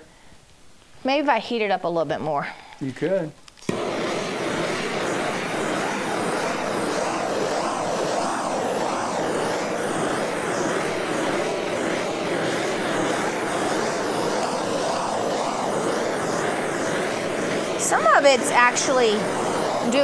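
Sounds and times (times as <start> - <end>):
gas torch hissing: 3.6 - 20.0.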